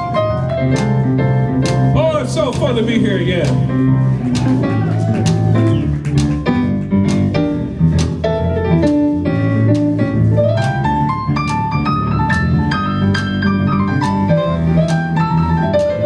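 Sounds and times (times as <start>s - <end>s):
rising notes run: 0.0s - 8.2s
live blues band playing: 0.0s - 16.0s.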